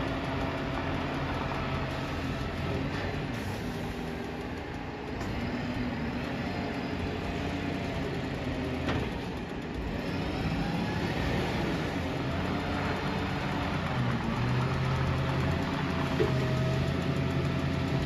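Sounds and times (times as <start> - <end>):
diesel truck engine running: 0.0 - 18.0.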